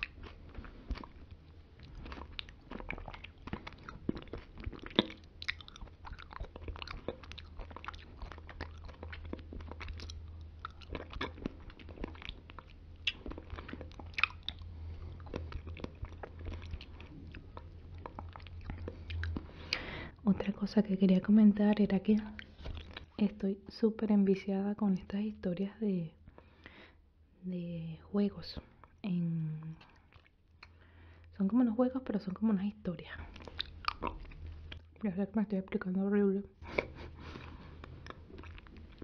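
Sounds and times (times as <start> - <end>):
wet mouth sounds eating: 0.0 - 20.7, 22.0 - 23.2, 28.7 - 30.8, 33.2 - 35.0, 36.6 - 39.0.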